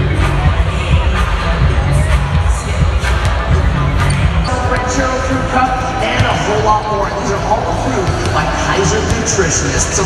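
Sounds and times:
arena music: 0.0s - 10.0s
announcer speaking over loudspeakers: 4.5s - 10.0s
basketballs bouncing on hardwood: 6.0s - 9.5s.

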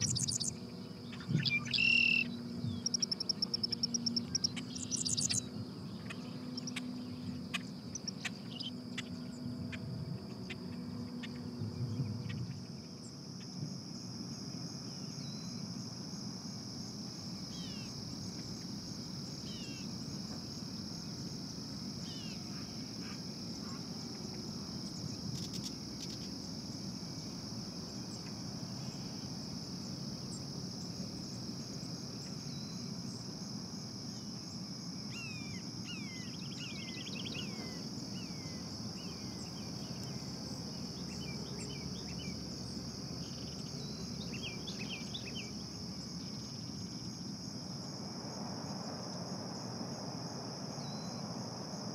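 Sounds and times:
birds chirping: 0.0s - 8.8s
crickets chirping: 0.0s - 51.9s.

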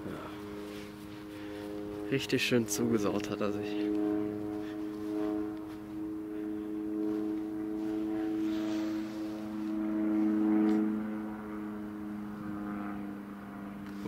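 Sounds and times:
propeller aircraft engine drone: 0.0s - 14.0s.

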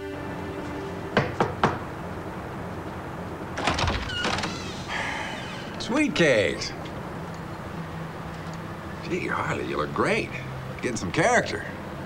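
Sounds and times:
knocks on a door: 1.2s - 1.8s.

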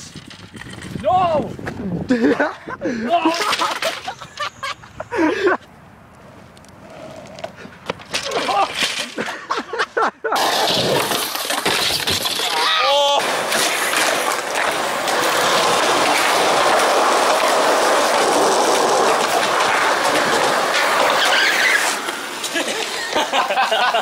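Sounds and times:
skateboard wheels rolling on concrete: 0.0s - 24.0s
voice-like cry: 12.4s - 13.2s.

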